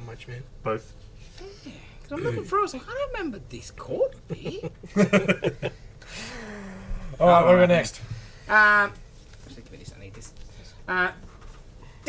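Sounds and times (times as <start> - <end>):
man speaking: 2.1 - 2.6, 7.2 - 8.1
men chuckling: 4.3 - 6.9.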